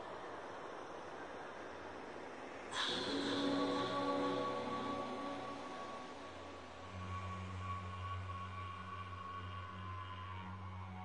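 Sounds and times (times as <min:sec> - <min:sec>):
hiss-like wash of noise: 0:00.0 - 0:11.0.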